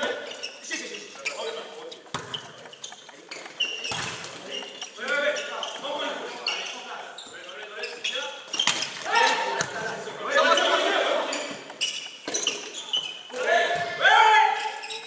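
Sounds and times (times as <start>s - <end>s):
players calling and shouting: 0.0s - 15.0s
volleyball being struck: 2.1s - 2.7s, 3.8s - 4.7s.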